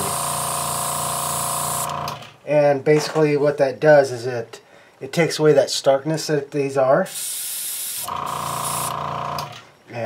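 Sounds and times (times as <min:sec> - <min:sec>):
airbrush hissing: 0:00.0 - 0:01.9, 0:07.0 - 0:09.0
compressor buzzing: 0:00.0 - 0:02.4, 0:07.1 - 0:09.7.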